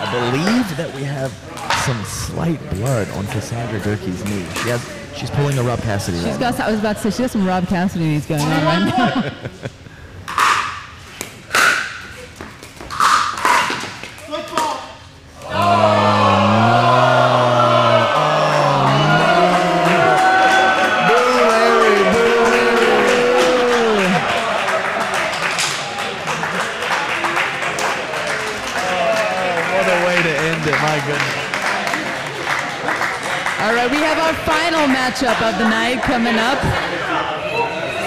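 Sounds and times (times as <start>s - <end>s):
crowd noise: 0.0s - 10.1s, 15.2s - 38.0s
people shouting: 15.4s - 24.3s.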